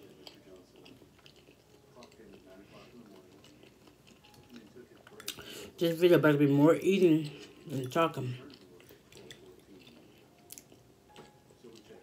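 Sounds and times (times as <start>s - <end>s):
chewing with mouth closed: 0.0s - 5.5s, 7.2s - 12.0s.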